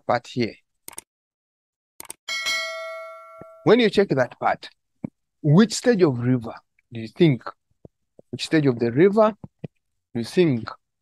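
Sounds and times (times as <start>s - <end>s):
bright bell chime: 2.3s - 3.8s.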